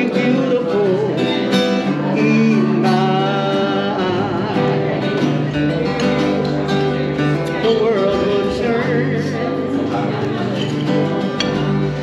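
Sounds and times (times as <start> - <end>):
person singing: 0.0 - 5.2
acoustic guitar strumming: 0.0 - 12.0.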